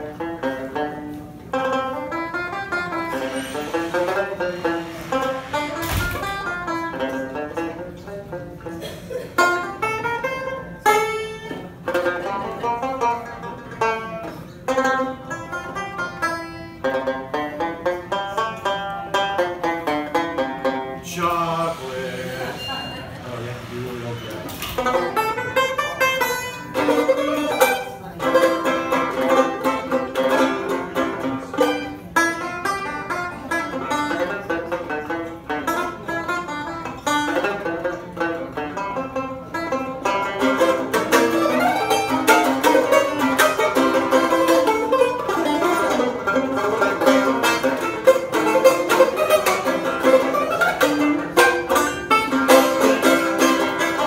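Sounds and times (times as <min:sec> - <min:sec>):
banjo picking: 0:00.0 - 0:22.9, 0:24.4 - 0:54.0.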